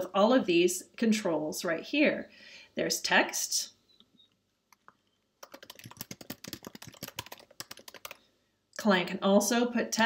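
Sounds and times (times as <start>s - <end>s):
computer keyboard typing: 4.7s - 8.2s.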